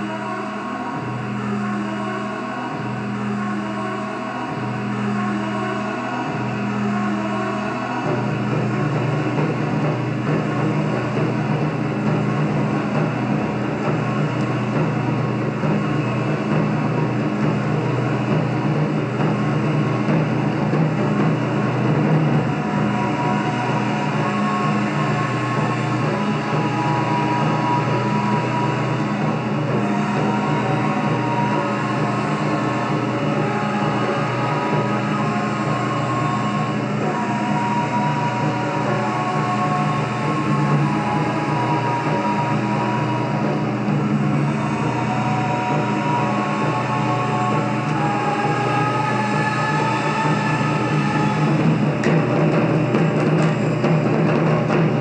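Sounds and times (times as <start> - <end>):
taiko drum ensemble: 6.2 - 55.0.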